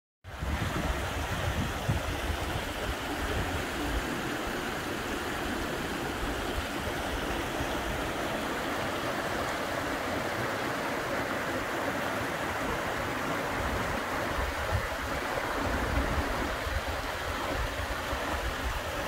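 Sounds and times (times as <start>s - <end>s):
creek splashing over cascades: 0.3s - 19.0s.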